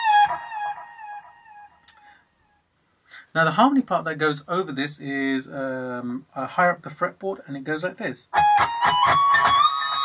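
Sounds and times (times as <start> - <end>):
electric guitar bent note: 8.4 - 10.0.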